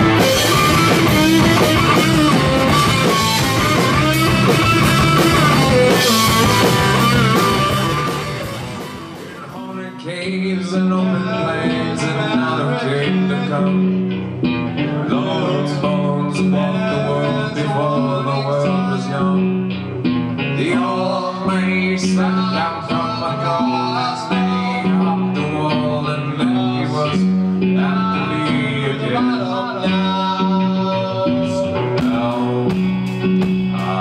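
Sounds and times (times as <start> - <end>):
bass notes: 0.0 - 34.0
drums: 0.0 - 34.0
man singing: 9.2 - 19.8, 20.4 - 34.0.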